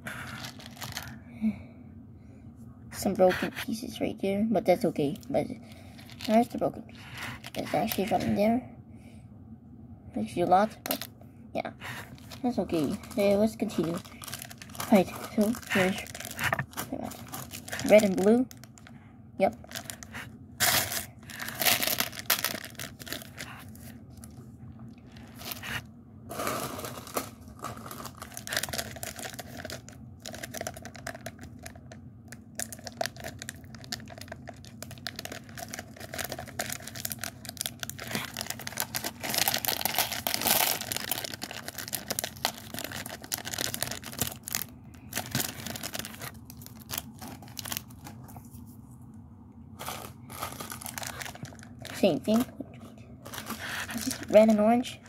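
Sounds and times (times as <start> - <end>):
plastic packet crinkling and tearing: 0.2 - 1.2, 5.1 - 8.2, 10.8 - 11.1, 11.8 - 24.4, 25.0 - 48.3, 49.8 - 52.5, 53.2 - 54.7.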